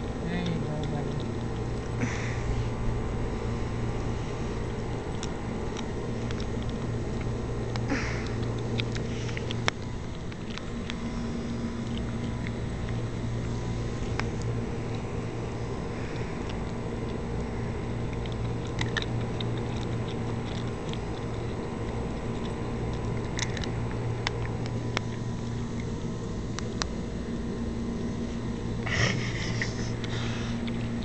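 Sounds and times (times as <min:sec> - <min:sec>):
dog crunching bone: 0:00.0 - 0:28.8, 0:29.4 - 0:31.0
steady low hum: 0:00.0 - 0:31.0.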